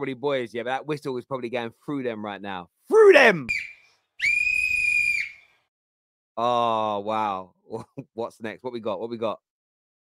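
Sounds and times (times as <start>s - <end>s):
referee's whistle blast: 3.1s - 5.4s.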